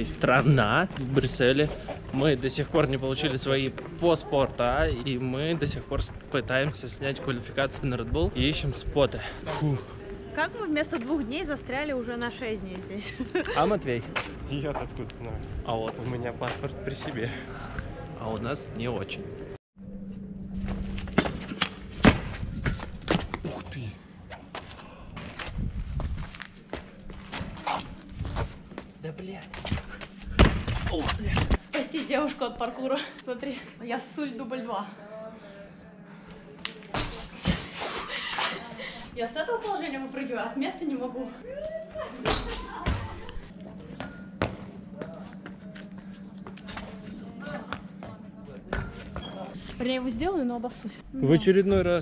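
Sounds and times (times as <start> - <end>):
steady low hum: 0.0 - 52.0
sneakers thudding on stone: 29.5 - 31.6
landing thump: 30.3 - 31.6.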